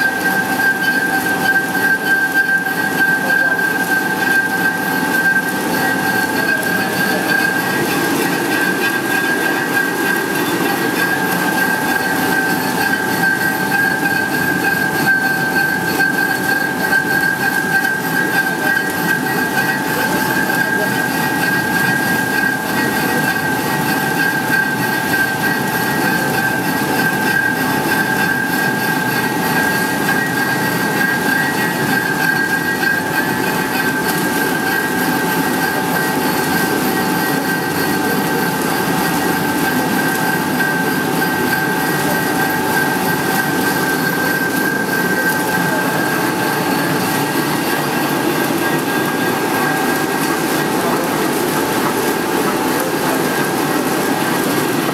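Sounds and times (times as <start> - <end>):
machine running with high whine: 0.0 - 54.9.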